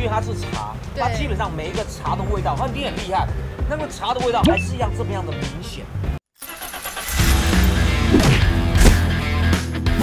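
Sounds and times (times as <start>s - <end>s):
upbeat music jingle: 4.3s - 5.4s.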